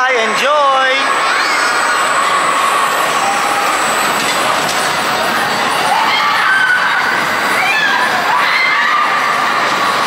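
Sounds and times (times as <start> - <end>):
roller coaster wheels rushing: 0.0 - 10.0.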